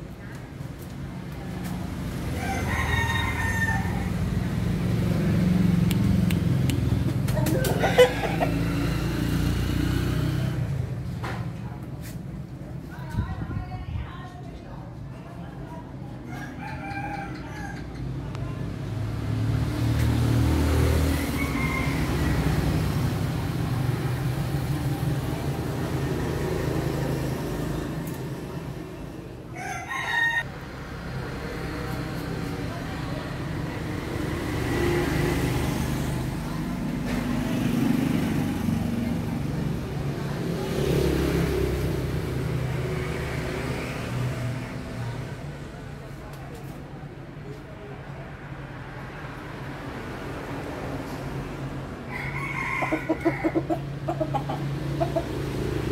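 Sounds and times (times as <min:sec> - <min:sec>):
rooster crowing: 0:02.2 - 0:04.4, 0:16.3 - 0:18.0, 0:21.0 - 0:22.9, 0:29.5 - 0:30.5, 0:52.1 - 0:55.3.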